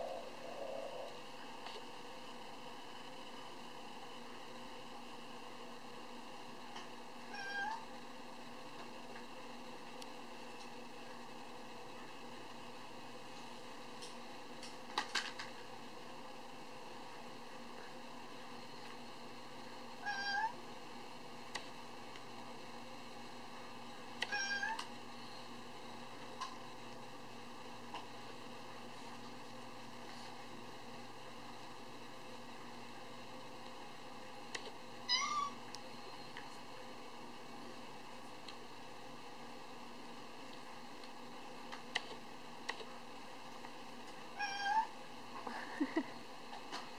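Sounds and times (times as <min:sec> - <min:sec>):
faint room hiss: 0:00.0 - 0:46.9
cat meowing: 0:07.3 - 0:07.8, 0:20.0 - 0:20.5, 0:24.3 - 0:24.8, 0:35.1 - 0:35.6, 0:44.4 - 0:44.9.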